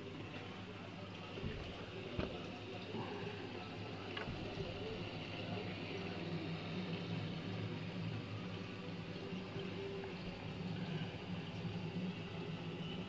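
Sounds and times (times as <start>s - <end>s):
aquarium pump hum: 0.0s - 13.0s
watery hiss of circulation: 4.7s - 13.0s.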